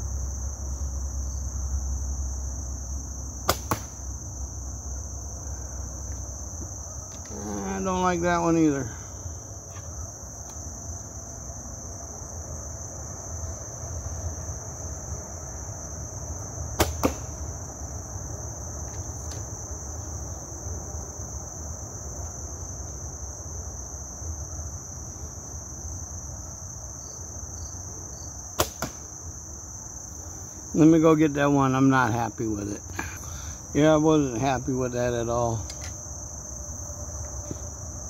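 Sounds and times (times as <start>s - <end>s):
crickets chirring: 0.0s - 38.0s
arrow striking target: 3.4s - 4.0s, 16.8s - 17.4s, 28.6s - 29.1s
bow release crack: 3.4s - 4.0s, 16.8s - 17.4s, 28.6s - 29.1s, 35.6s - 36.0s.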